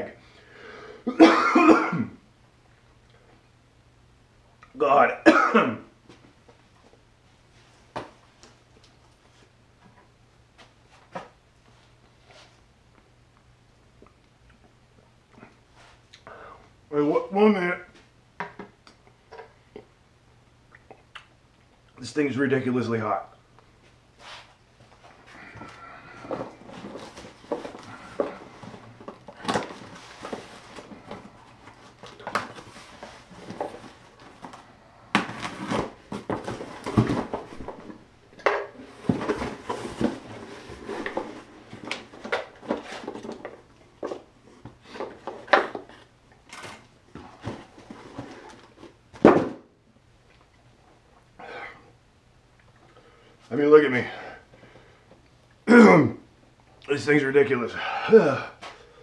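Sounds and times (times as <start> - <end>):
cardboard rustling and scraping: 24.2 - 38.1, 38.7 - 49.6.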